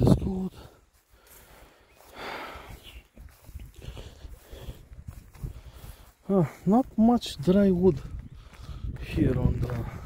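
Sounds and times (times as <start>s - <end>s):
footsteps through wet grass: 0.0s - 10.0s.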